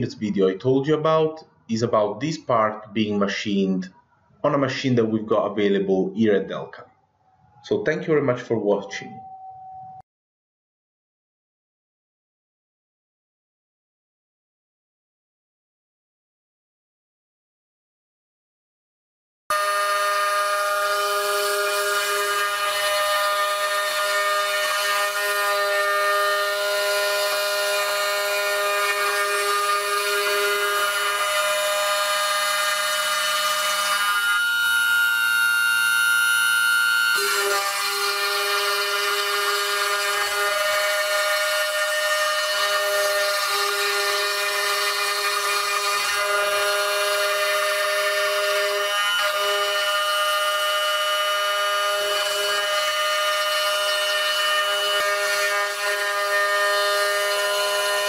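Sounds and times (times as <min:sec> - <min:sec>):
router spindle whine cutting wood: 0:19.5 - 0:58.0.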